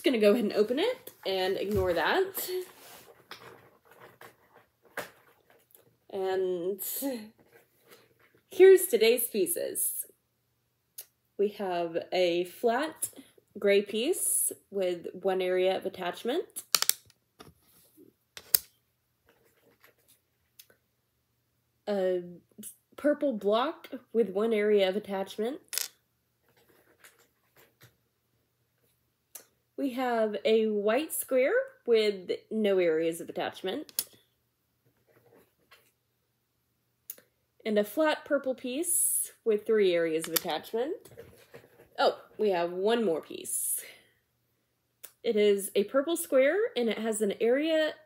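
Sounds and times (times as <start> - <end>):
soft rustling: 0.1 - 6.1, 19.2 - 20.6.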